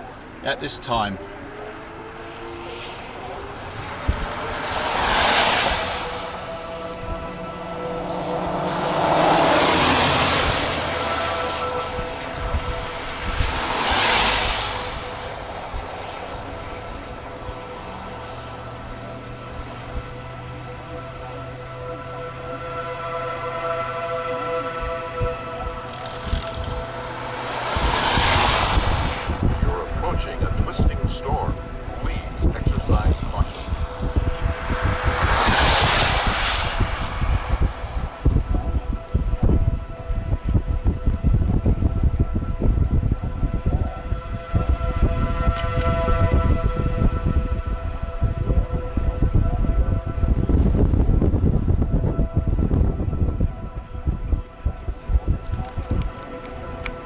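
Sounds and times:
vehicles passing: 0.0s - 57.0s
low hum: 1.2s - 57.0s.

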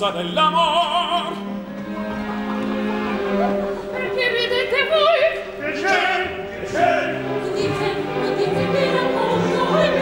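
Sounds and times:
opera orchestra: 0.0s - 10.0s
operatic singing: 0.0s - 10.0s
chorus singing: 0.1s - 10.0s.

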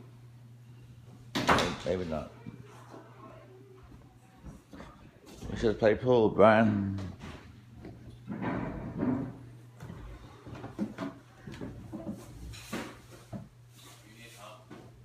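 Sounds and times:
low steady hum: 0.0s - 15.0s
muffled voices: 1.8s - 7.4s.

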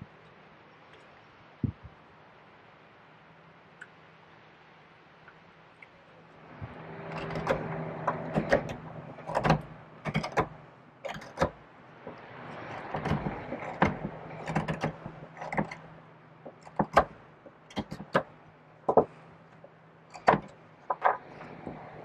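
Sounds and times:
hook knife scraping wood: 10.1s - 11.5s.

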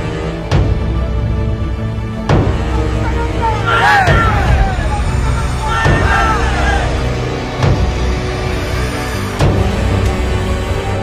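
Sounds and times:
dramatic background music: 0.0s - 11.0s.

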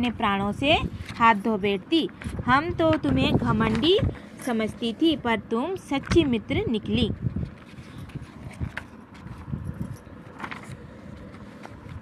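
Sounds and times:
paper pages rustling: 7.4s - 12.0s.

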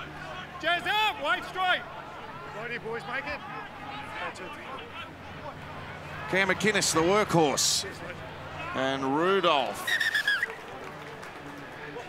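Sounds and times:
stadium crowd murmur: 0.0s - 12.0s
referee's whistle trill: 9.8s - 10.6s.

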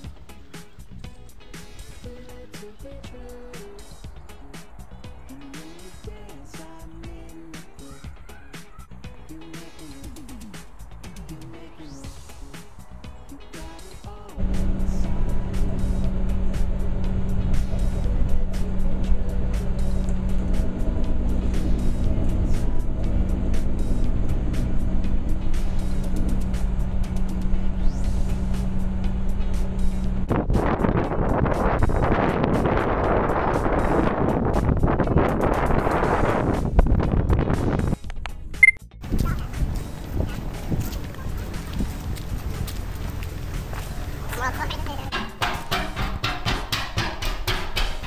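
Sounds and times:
road rumble: 0.0s - 48.0s
bus engine drone: 13.2s - 38.4s, 39.0s - 45.1s
rough rushing noise: 14.4s - 38.0s.

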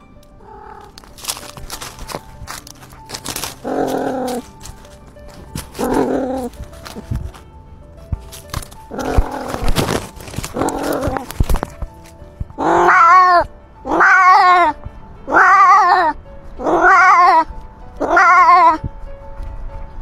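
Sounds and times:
cat yowling: 0.4s - 2.0s, 3.1s - 4.6s, 5.6s - 6.6s, 12.6s - 18.8s
rustling and scuffling: 0.6s - 13.0s.

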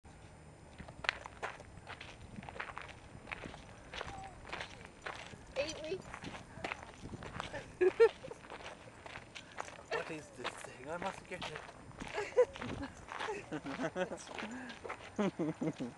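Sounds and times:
footsteps crunching on gravel: 0.2s - 15.9s
person laughing: 7.4s - 8.6s, 12.0s - 15.9s.

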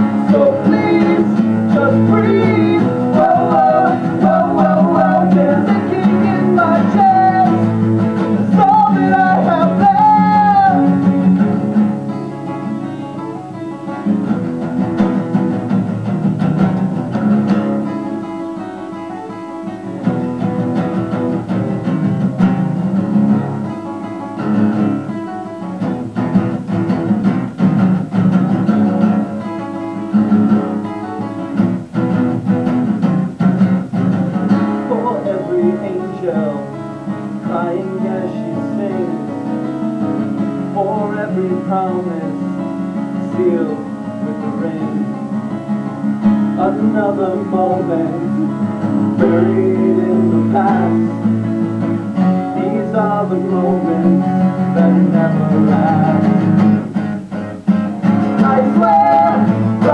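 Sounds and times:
man singing: 0.0s - 11.8s, 34.8s - 45.6s, 46.4s - 51.5s, 52.4s - 57.0s, 58.0s - 59.9s
acoustic guitars strumming: 0.0s - 59.9s.

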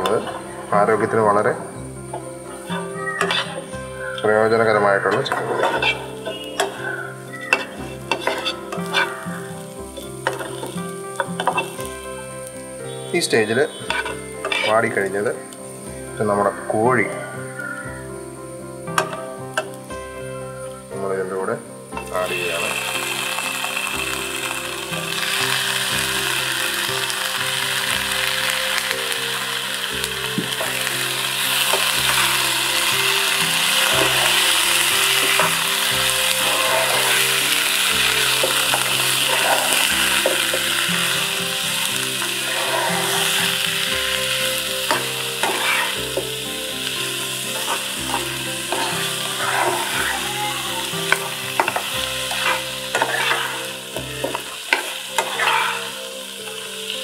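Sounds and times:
chicken sizzling in hot oil: 0.0s - 57.0s
spatula scraping and tapping pan: 2.1s - 3.7s, 5.1s - 6.8s, 7.5s - 9.2s, 10.0s - 11.8s, 13.8s - 14.7s, 44.9s - 46.3s, 47.6s - 49.9s, 51.1s - 55.9s.

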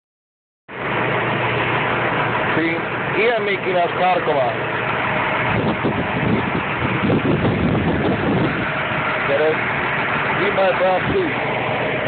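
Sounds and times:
vehicle engine idling: 0.7s - 12.0s.

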